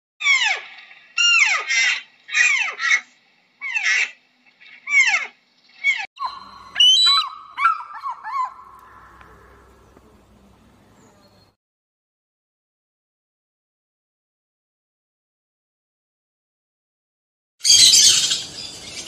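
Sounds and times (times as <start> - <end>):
deer calling: 4.8 - 10.3.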